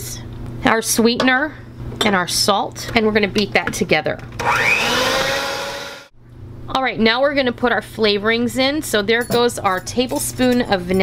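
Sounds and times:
electric hand mixer whine: 0:04.4 - 0:06.1.

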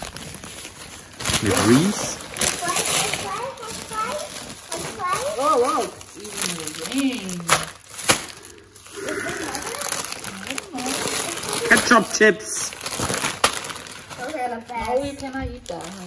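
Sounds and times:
candy packaging crackling: 0:00.0 - 0:16.0.

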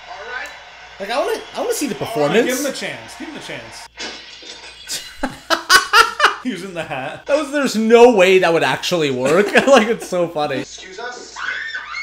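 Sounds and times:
man laughing hard: 0:04.9 - 0:06.4.

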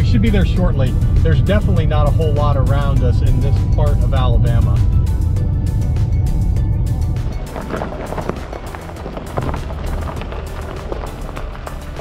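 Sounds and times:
background music with steady beat: 0:00.0 - 0:12.0
car driving low rumble: 0:00.0 - 0:12.0.

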